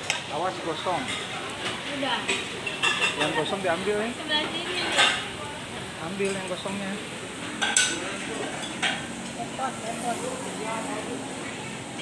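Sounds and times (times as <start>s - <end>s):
background chatter: 0.1s - 12.0s.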